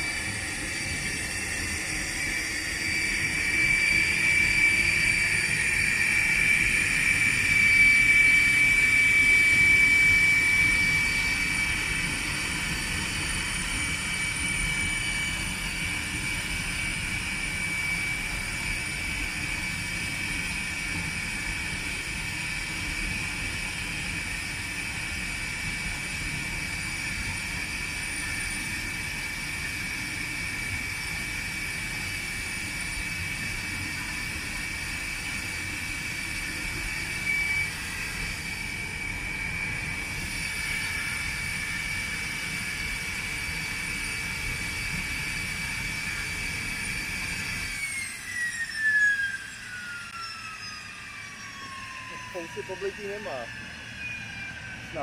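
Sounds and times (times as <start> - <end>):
jet engine idling: 0.0 - 55.0.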